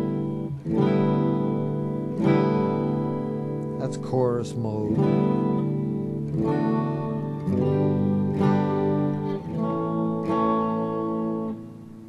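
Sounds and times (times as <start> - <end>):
electric guitar strumming chords: 0.0 - 12.0.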